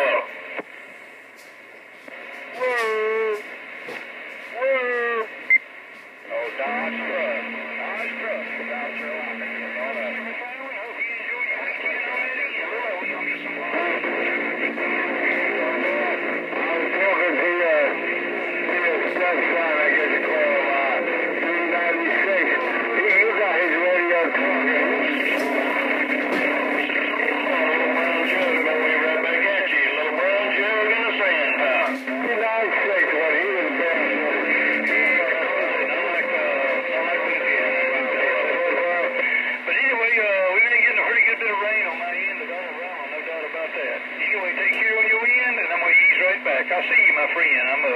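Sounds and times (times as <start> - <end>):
garbled radio voices: 0.0 - 0.9, 2.1 - 47.9
radio crackles: 0.0 - 47.9
steady low radio tones: 0.0 - 47.9.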